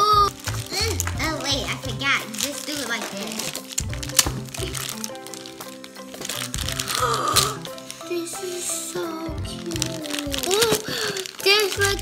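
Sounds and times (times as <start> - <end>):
background music: 0.0 - 12.0
plastic bags crinkling: 0.0 - 12.0.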